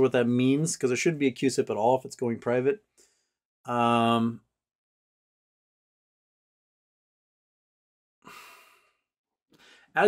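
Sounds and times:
man sighing: 8.3 - 8.8
quick breath in: 9.6 - 10.0.

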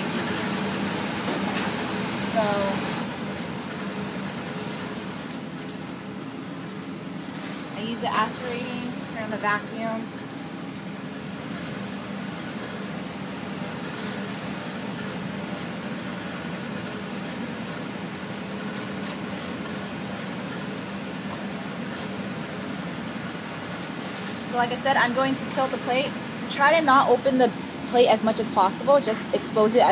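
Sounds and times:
blower hum and air rush: 0.0 - 29.9.

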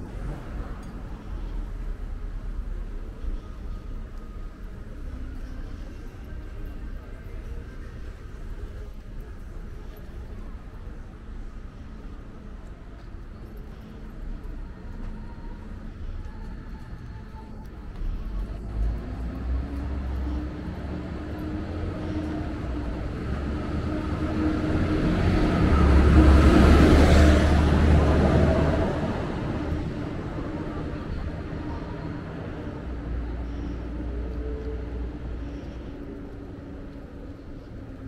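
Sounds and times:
low rumble of traffic: 0.0 - 38.0.

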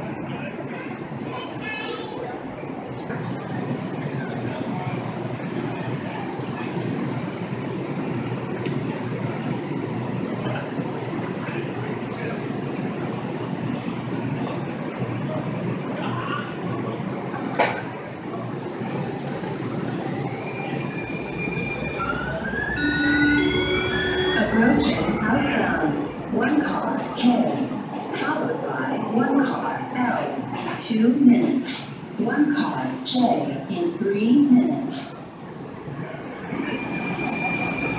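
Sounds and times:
train rumble: 0.0 - 37.9.

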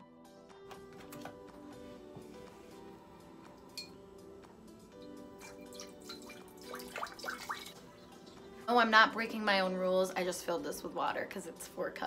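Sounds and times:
soft background music: 0.0 - 12.0
liquid pouring and dripping: 5.0 - 8.4.

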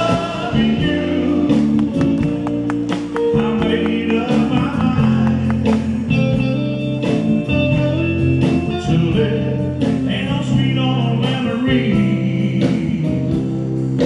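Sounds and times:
man singing: 0.0 - 2.4, 3.1 - 6.6, 8.4 - 14.0
live rock band playing: 0.0 - 14.0
slow steady drum beat: 0.0 - 14.0.

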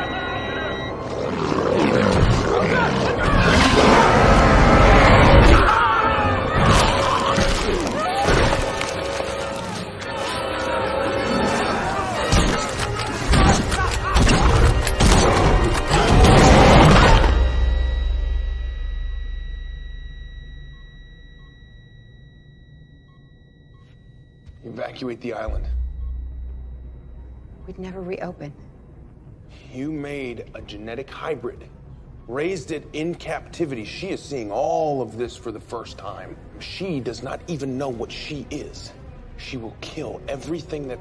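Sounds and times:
faint steady high tone: 0.0 - 1.1, 17.3 - 29.5
soft electronic beeps: 0.0 - 1.1, 17.4 - 29.3
dinosaur roaring and growling: 1.0 - 7.4
deep heavy rumble: 25.5 - 29.5.

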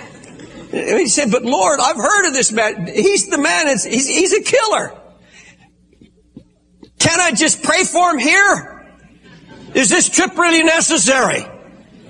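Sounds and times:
faint steady hum: 0.0 - 12.0
man preaching: 0.7 - 5.1, 6.9 - 8.9, 9.8 - 11.7.

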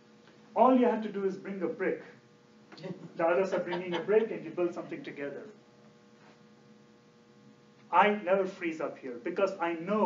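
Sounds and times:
faint electrical hum: 0.0 - 10.0
man's voice: 3.2 - 5.5.

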